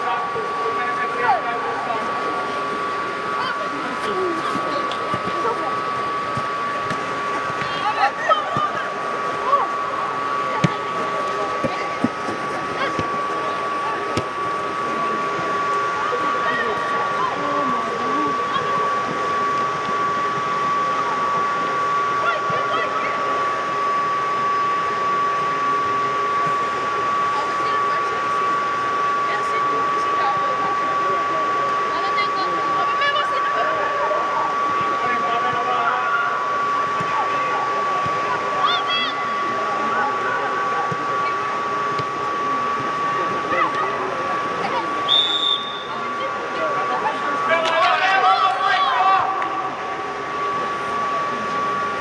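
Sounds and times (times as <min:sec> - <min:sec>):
blower fans whining: 0:00.0 - 0:52.0
constant high tone: 0:00.0 - 0:52.0
players shouting: 0:46.9 - 0:49.8.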